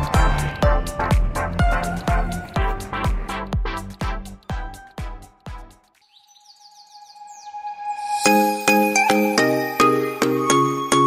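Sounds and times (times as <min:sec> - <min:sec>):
high falling chirps: 0:06.0 - 0:10.2.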